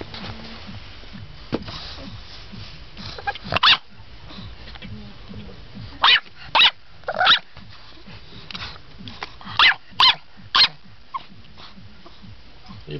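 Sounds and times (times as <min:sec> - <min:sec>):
puppy barking: 0:03.2 - 0:03.9, 0:06.0 - 0:07.5, 0:09.5 - 0:11.3.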